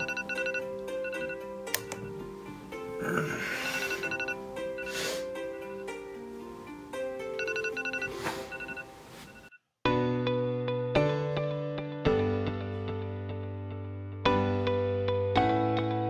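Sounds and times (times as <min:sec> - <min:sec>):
phone alarm chiming melody: 0:00.0 - 0:02.2, 0:03.6 - 0:06.0, 0:07.3 - 0:09.6.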